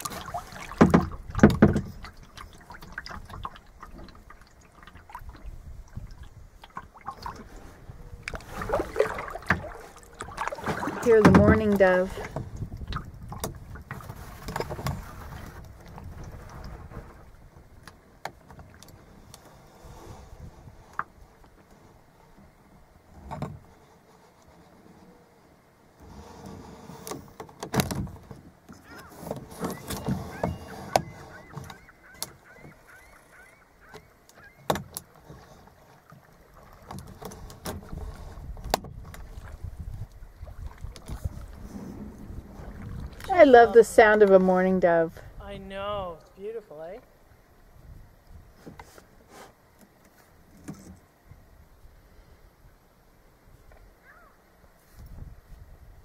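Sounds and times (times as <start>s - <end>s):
water lapping against kayak: 0.0s - 45.4s, 46.2s - 56.0s
knocks against boat: 0.7s - 2.1s, 10.7s - 15.0s
dove cooing: 28.8s - 34.6s.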